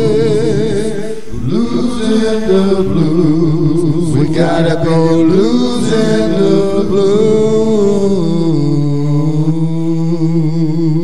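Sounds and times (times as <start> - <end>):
man singing a long note: 0.0 - 11.0.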